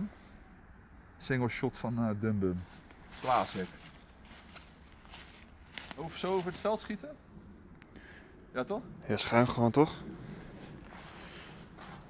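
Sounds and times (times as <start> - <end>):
footsteps crunching dry leaves: 2.6 - 7.0, 10.9 - 12.0.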